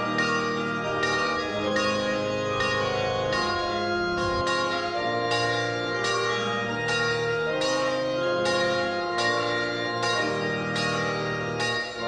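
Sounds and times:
church bells pealing: 0.0 - 12.0.

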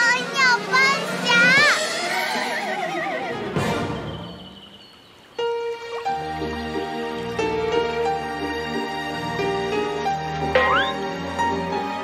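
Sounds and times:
gentle music: 2.9 - 12.0.

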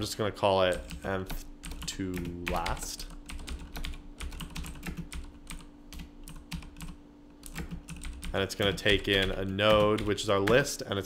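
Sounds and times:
computer keyboard typing: 0.7 - 10.7.

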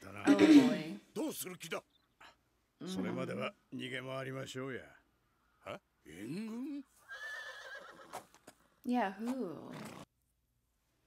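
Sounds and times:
man speaking: 0.0 - 1.8, 2.9 - 5.0, 5.6 - 6.9
horse whinnying: 7.0 - 8.4, 9.6 - 10.1.

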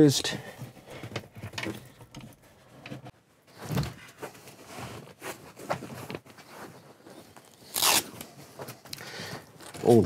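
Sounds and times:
fabric rustling and scraping: 2.3 - 8.9
velcro ripping apart: 7.5 - 8.3.

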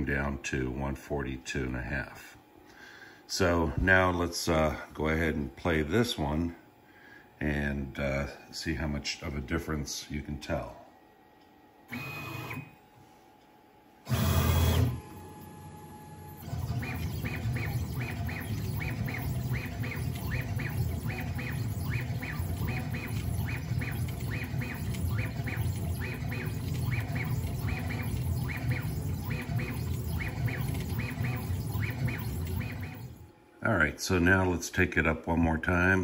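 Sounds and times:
short high motor chirps: 11.9 - 12.8, 14.1 - 33.3
stepper motors humming: 14.0 - 33.3.

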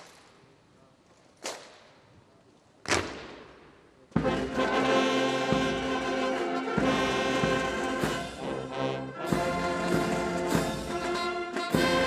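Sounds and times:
military brass band playing: 4.2 - 12.0.

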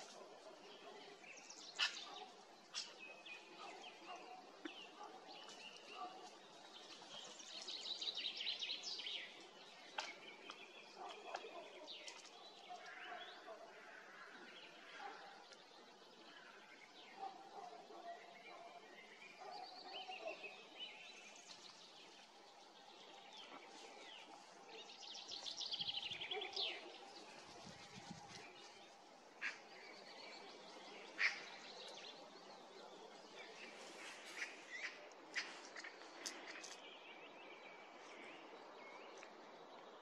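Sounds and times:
songbird song and calls: 0.0 - 40.0.

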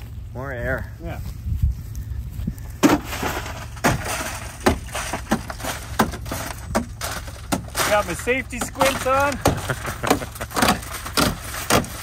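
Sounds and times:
glass cracking and crunching: 2.9 - 12.0.

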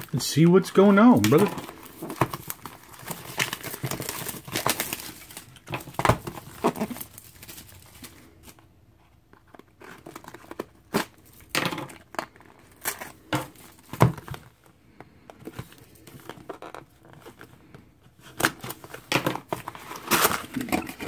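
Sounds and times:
plastic shrink-wrap crinkling: 0.0 - 8.6.

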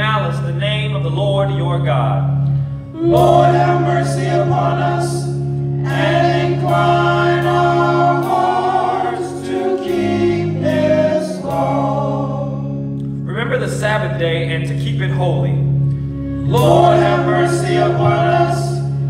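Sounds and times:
instrumental accompaniment with bass: 0.0 - 19.0
choir singing in harmony: 2.9 - 13.0, 16.3 - 19.0.

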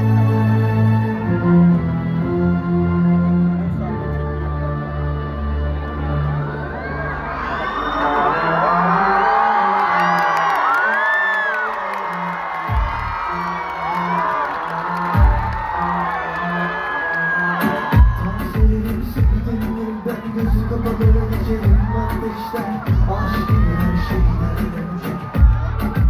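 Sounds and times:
crowd screaming and cheering: 0.0 - 26.0
steady drum beat: 12.7 - 13.2, 18.0 - 19.7, 20.4 - 26.0.

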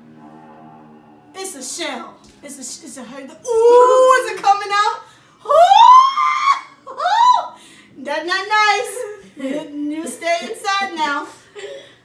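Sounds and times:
woman screaming: 3.5 - 4.3, 5.4 - 7.6.

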